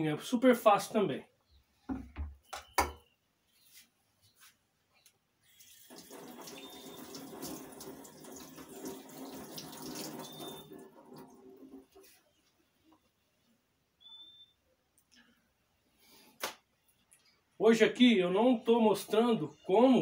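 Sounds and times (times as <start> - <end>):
tap running into a sink: 5.9 - 11.3.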